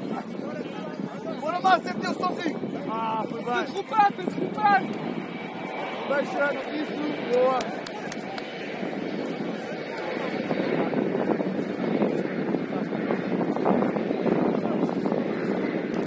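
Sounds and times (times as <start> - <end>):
steady rushing noise: 0.0 - 16.0.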